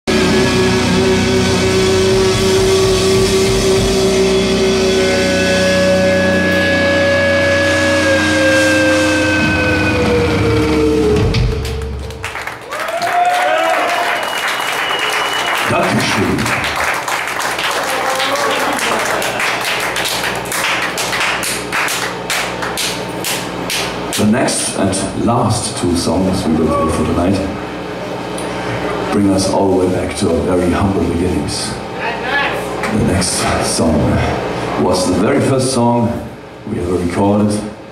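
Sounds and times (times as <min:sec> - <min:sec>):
electric guitar chord with feedback: 0:00.1 - 0:12.4
crowd cheering and applauding: 0:08.7 - 0:24.0.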